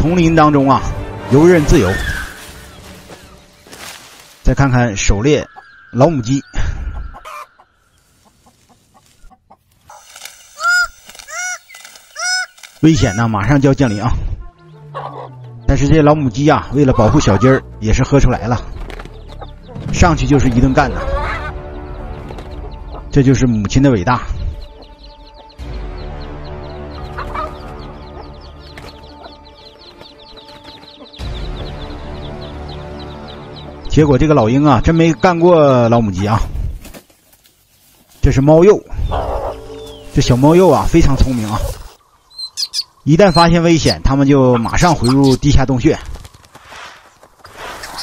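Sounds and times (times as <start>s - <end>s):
chicks peeping: 1.8s - 16.2s, 18.7s - 23.1s, 24.1s - 48.0s
hen clucking: 5.2s - 15.7s, 20.8s - 21.8s, 26.9s - 31.2s, 38.9s - 45.6s.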